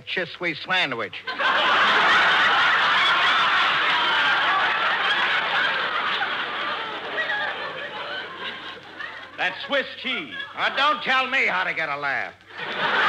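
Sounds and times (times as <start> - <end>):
studio audience laughing: 1.2 - 11.3, 12.4 - 13.0.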